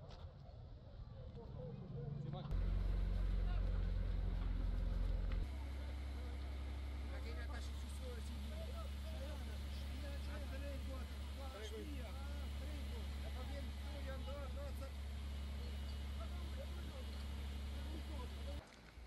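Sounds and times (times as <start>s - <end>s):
voices calling: 0.9s - 18.6s
fire engine pump drone: 2.5s - 18.6s.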